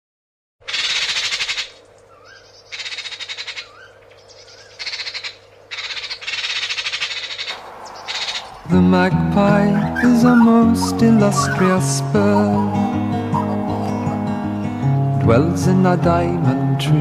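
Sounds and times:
magpie chattering: 0:00.6 - 0:08.7, 0:09.5 - 0:14.7
soft rising chirps: 0:01.9 - 0:14.8.

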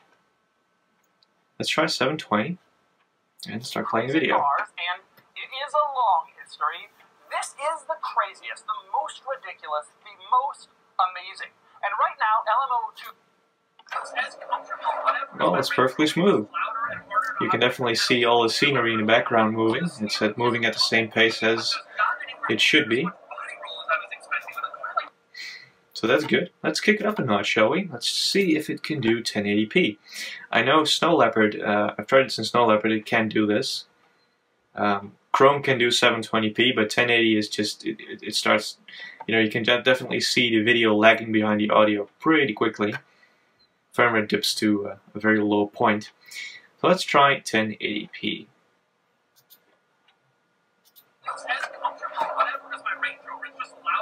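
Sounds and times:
man's voice through laptop speakers: 0:01.6 - 0:02.6, 0:03.4 - 0:04.8, 0:13.9 - 0:33.8, 0:34.8 - 0:43.0, 0:44.0 - 0:48.4, 0:51.3 - 0:54.0.

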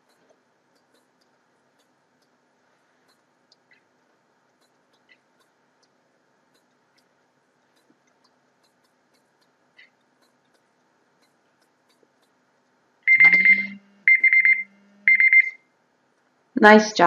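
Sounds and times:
rapid high-pitched timer beeping: 0:13.0 - 0:15.7.

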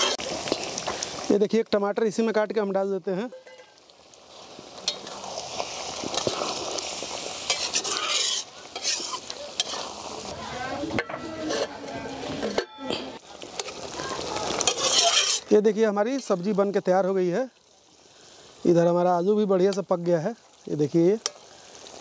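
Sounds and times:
gravy bubbling and sizzling: 0:00.0 - 0:22.0
spatula scraping a pan: 0:07.4 - 0:10.2, 0:10.9 - 0:13.8, 0:14.6 - 0:15.5.

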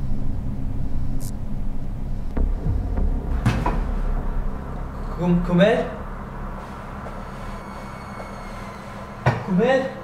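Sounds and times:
low droning rumble: 0:00.0 - 0:09.3
sharp knock: 0:02.4 - 0:04.6.

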